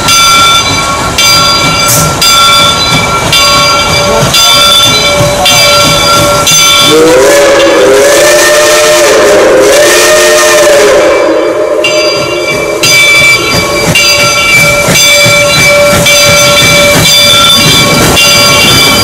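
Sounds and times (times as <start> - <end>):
high ringing tones: 0.0 - 6.9, 11.8 - 19.0
train running: 0.0 - 19.0
steam whistle blast: 6.5 - 12.1.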